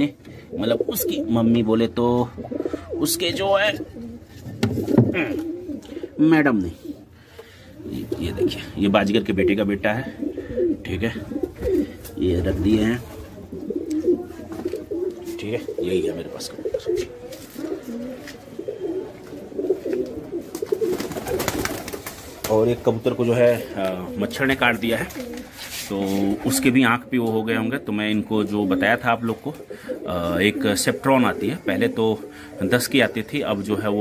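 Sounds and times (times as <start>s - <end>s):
pigeons cooing: 0.0s - 34.0s.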